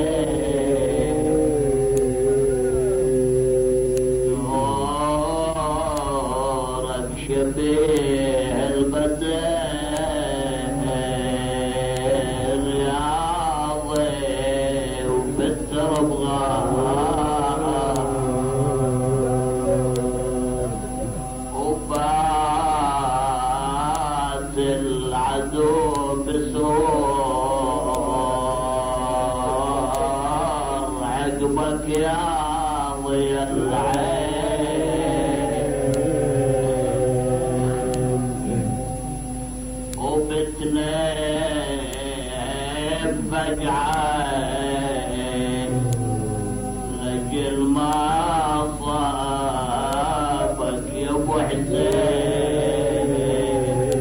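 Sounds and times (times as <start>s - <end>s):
faint high whine: 0.0s - 54.0s
low hum: 0.0s - 54.0s
man chanting a mourning lament: 0.0s - 54.0s.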